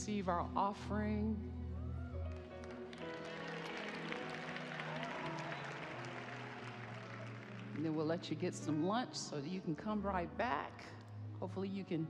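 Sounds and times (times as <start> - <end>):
soft keyboard chords: 0.0 - 12.0
audience clapping: 2.2 - 8.2.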